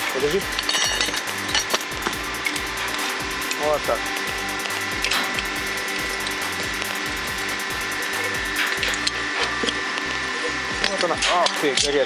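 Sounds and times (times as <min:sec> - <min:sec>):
metal scraping and clicking: 0:00.0 - 0:12.0
steady background hum: 0:00.0 - 0:12.0.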